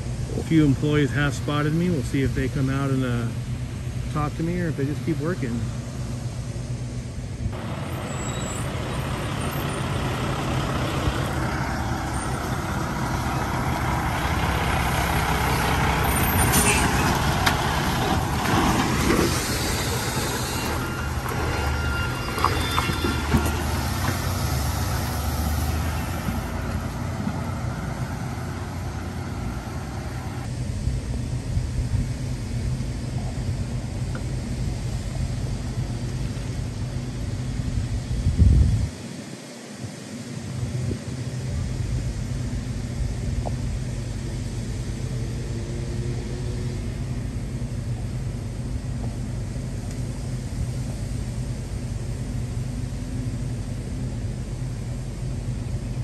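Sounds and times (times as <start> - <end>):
truck passing by: 0.0 - 38.6, 40.4 - 56.0
air brakes hissing: 7.6 - 13.3, 13.9 - 17.5, 19.0 - 26.3.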